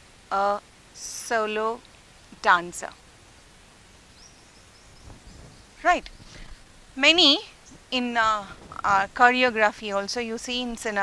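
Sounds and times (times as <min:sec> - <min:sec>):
woman speaking: 0:00.3 - 0:01.8, 0:02.4 - 0:03.0, 0:05.8 - 0:06.1, 0:07.0 - 0:11.0.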